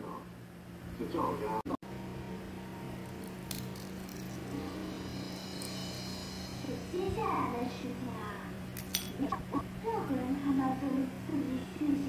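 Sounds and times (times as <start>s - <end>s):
steady low hum: 0.0s - 12.0s
egg shell crackling as peeled: 3.0s - 4.6s.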